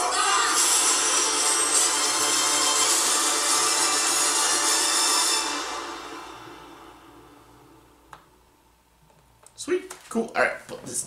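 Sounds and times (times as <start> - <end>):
loud film trailer music: 0.0 - 8.1.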